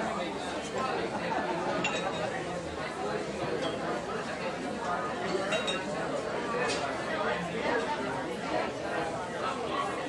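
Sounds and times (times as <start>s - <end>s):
background chatter of shoppers: 0.0s - 10.0s.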